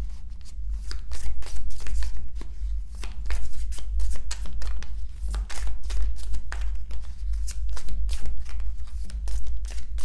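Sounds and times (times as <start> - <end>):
steady low hum: 0.0 - 10.0
cards being shuffled: 0.4 - 10.0.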